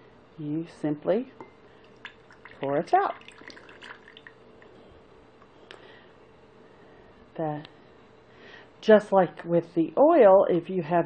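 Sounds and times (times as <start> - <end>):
liquid dripping and splashing: 1.8 - 4.4.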